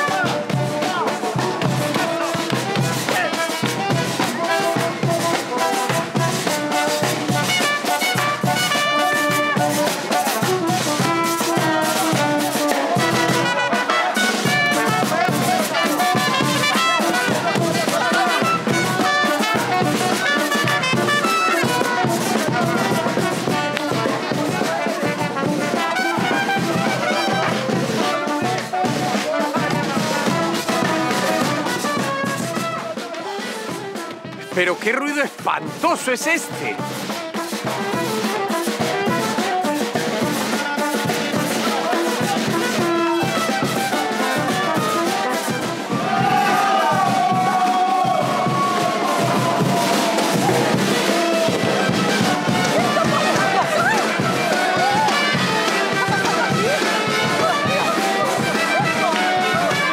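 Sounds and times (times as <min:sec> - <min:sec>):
brass band playing dance music: 0:00.0 - 0:59.9.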